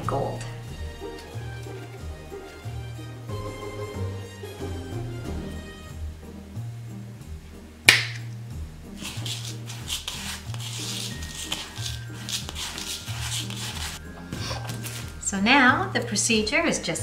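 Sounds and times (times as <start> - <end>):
soft background music: 0.0 - 17.0
fingers stirring salt crystals: 8.9 - 16.2.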